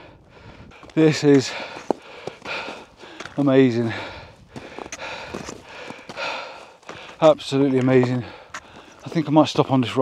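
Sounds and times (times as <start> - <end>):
heavy breathing: 0.0 - 7.3, 8.0 - 9.1
footsteps on snow and rock: 0.3 - 10.0.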